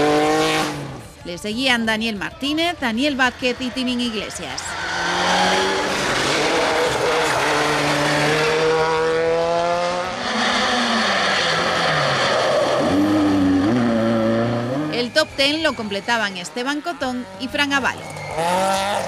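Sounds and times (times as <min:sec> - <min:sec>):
rally car engines at full throttle: 0:00.0 - 0:19.0.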